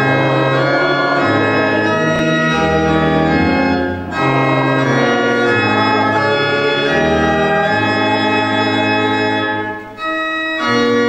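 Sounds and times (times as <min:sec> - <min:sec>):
organ playing sustained chords: 0:00.0 - 0:11.0.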